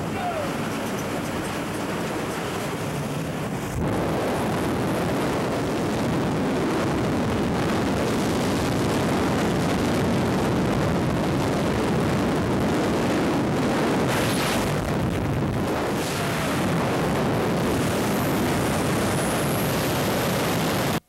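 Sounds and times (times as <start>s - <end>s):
wind rushing: 0.0s - 10.5s, 11.2s - 21.0s
propeller plane engine: 0.0s - 21.0s.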